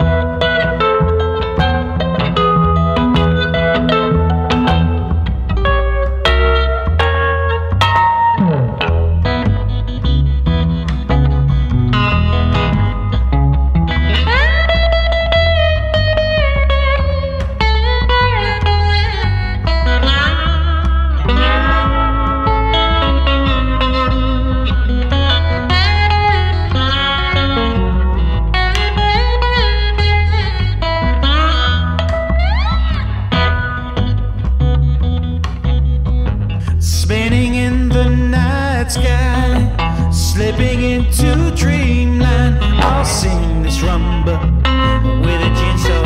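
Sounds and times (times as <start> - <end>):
electric guitar lead line: 0.0 - 46.0
plucked upright bass: 0.0 - 46.0.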